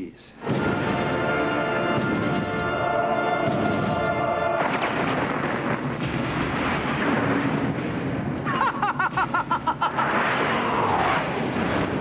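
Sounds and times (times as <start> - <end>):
dramatic music: 0.4 - 6.4
explosion-like rumbling: 0.4 - 12.0.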